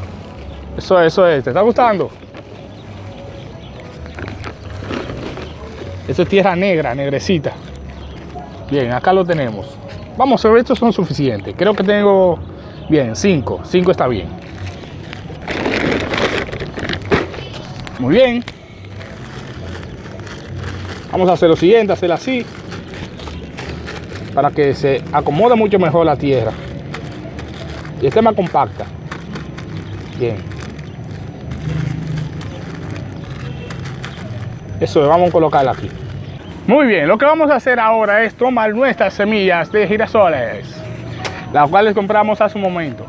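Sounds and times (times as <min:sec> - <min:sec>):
plastic bags of soil crinkling: 0:00.0 - 0:12.1, 0:13.0 - 0:43.0.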